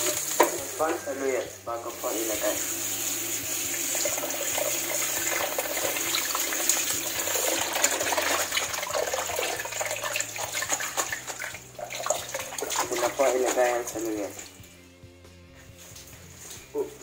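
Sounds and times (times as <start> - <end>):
tap water splashing into bowl: 0.2 - 1.0, 3.9 - 14.6.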